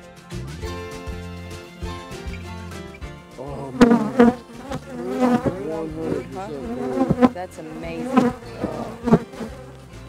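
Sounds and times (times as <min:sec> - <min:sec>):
faint background music: 0:00.0 - 0:10.0
honey bees buzzing: 0:03.3 - 0:10.0.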